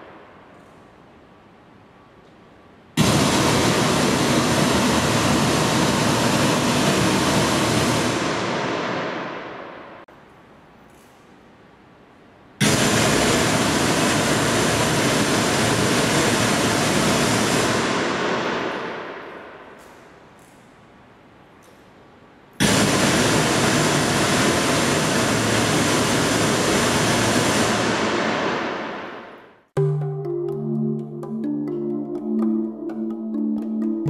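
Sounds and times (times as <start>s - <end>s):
reverberant tail: 3.0s - 10.1s, 12.6s - 20.3s.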